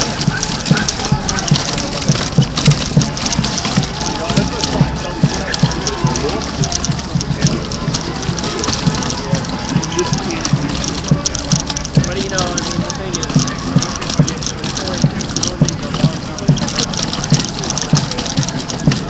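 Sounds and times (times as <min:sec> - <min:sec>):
city noise: 0:00.0 - 0:19.0
crowd voices: 0:00.0 - 0:19.0.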